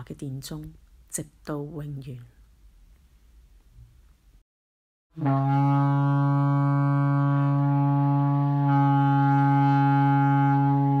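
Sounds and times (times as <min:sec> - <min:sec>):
shofar blast: 0:05.2 - 0:11.0.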